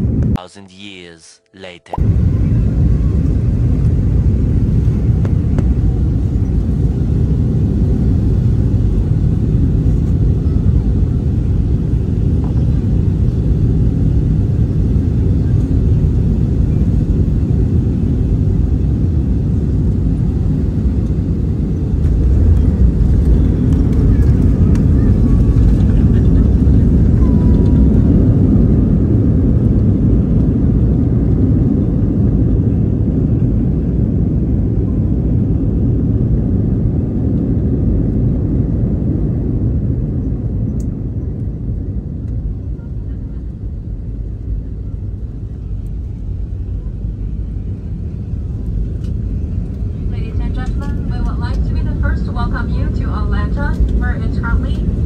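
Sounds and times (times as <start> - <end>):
jet airliner cabin rumble: 0.0 - 0.4, 2.0 - 55.0.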